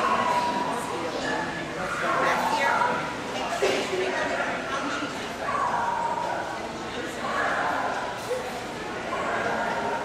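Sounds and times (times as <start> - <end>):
murmur of voices in a hall: 0.0 - 10.0.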